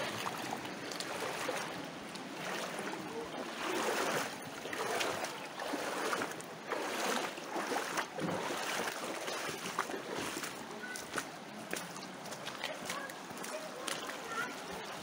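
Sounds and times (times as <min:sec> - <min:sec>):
footsteps splashing through stream: 0:00.0 - 0:15.0
running water: 0:00.0 - 0:15.0.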